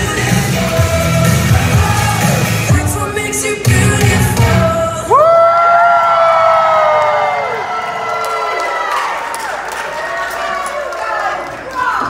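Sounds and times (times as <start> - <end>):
music with a beat: 0.0 - 5.0.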